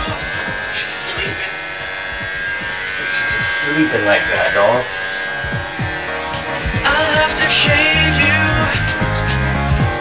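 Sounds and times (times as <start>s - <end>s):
background music: 0.0s - 10.0s
electric hair clippers buzzing: 0.0s - 10.0s.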